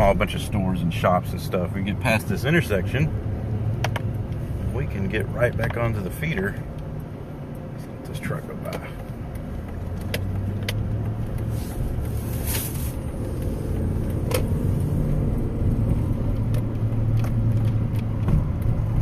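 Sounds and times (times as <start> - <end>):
car engine and road noise: 0.0 - 19.0
brief hiss: 11.6 - 13.0.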